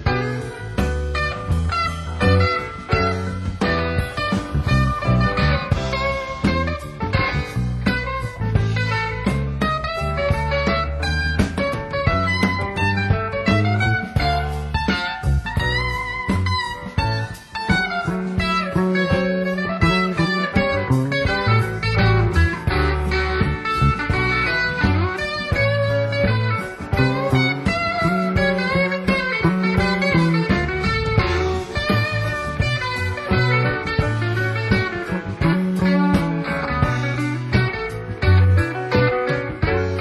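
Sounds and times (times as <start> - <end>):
bass guitar: 0.0 - 40.0
drums: 0.0 - 40.0
electric guitar lead: 0.0 - 40.0.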